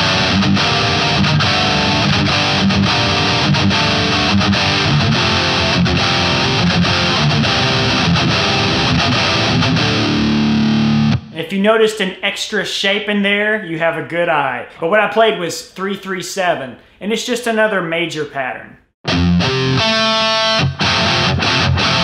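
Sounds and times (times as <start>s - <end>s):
distorted electric guitar riff: 0.0s - 11.4s, 19.0s - 22.0s.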